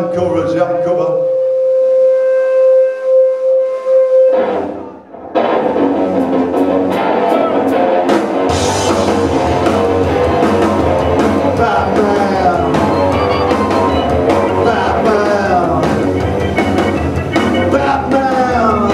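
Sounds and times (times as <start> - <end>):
electric guitar: 0.2 - 18.9
drums: 4.2 - 18.9
electric bass: 4.4 - 18.9.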